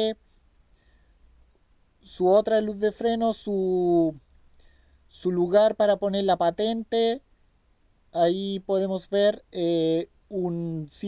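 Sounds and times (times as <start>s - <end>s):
faint click: 1.4s - 1.7s, 4.4s - 4.7s.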